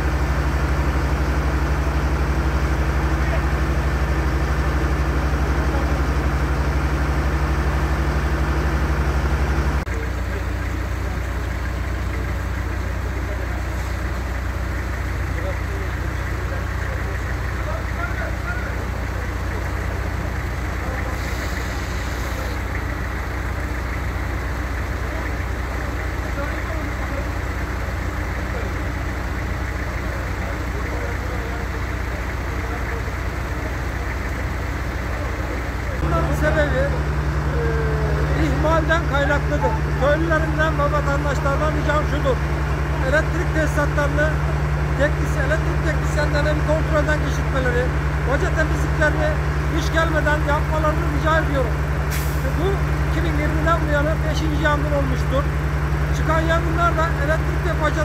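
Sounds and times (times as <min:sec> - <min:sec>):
vehicle engine idling: 0:00.0 - 0:58.0.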